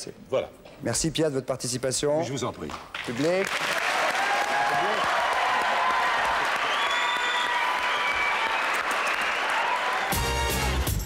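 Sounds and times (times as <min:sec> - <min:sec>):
audience applauding: 0:02.9 - 0:10.8.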